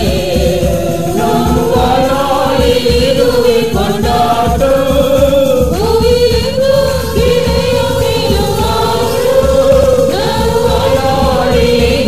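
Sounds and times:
group singing worship song: 0.0s - 12.0s
steady low beat: 0.0s - 12.0s.

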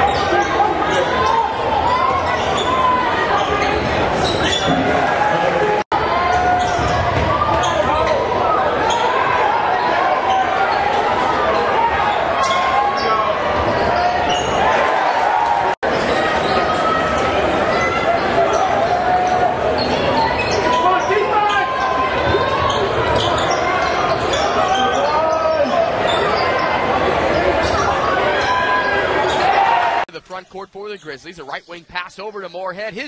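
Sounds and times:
crowd voices: 0.0s - 33.0s
shoes squeaking on court: 2.1s - 4.8s, 19.3s - 29.6s.

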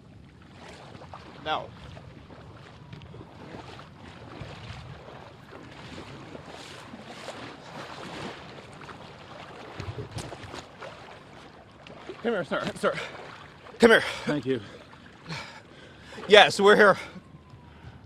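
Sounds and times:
water splashing: 0.0s - 17.5s
wind noise on microphone: 0.8s - 8.4s, 9.6s - 10.7s.

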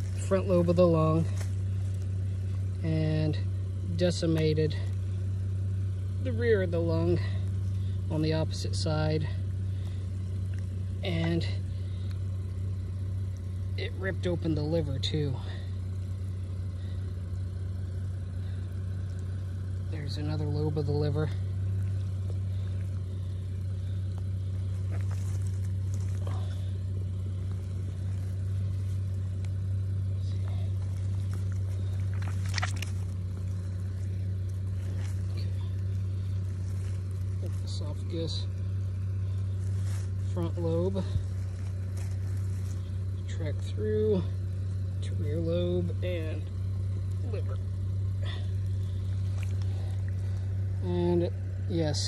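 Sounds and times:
engine idling: 0.0s - 52.0s
hand handling carcass: 0.0s - 52.0s.

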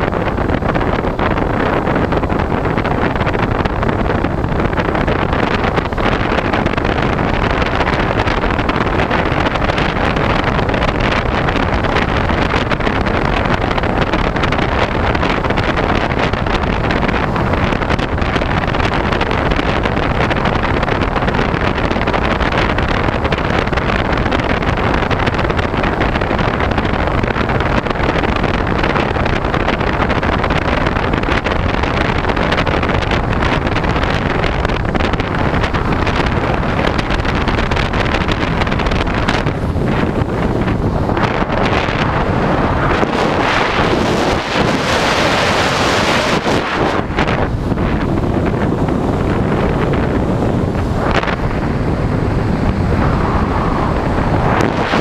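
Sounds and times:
loud wind rush: 0.0s - 55.0s.

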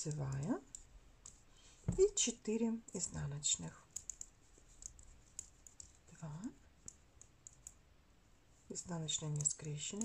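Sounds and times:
knitting needles clicking: 0.0s - 1.4s, 2.0s - 7.8s, 9.0s - 10.0s.

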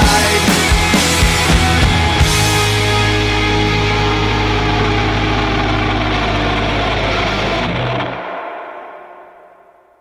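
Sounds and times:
rock music held chord: 0.0s - 10.0s.

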